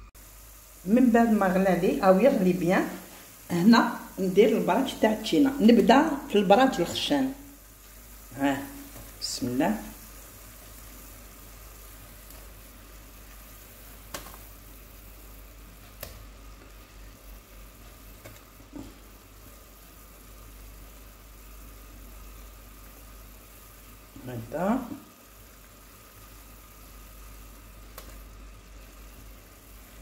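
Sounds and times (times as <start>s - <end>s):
sugar syrup boiling in a pot: 0.0s - 30.0s.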